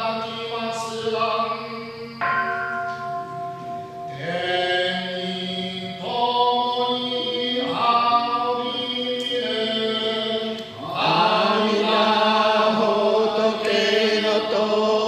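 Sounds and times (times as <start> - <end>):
bronze bowl bell ringing: 2.2 - 6.1
people chanting: 4.1 - 15.0.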